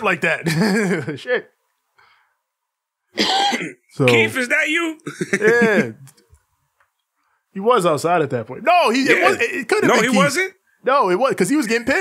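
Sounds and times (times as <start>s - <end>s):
man coughing: 3.2s - 4.3s.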